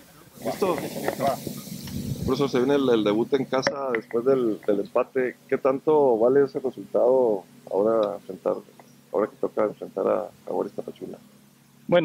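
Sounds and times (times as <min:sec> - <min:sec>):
faint distant voices: 0:00.0 - 0:11.3
steady hiss: 0:00.0 - 0:12.0
person speaking: 0:00.4 - 0:11.2.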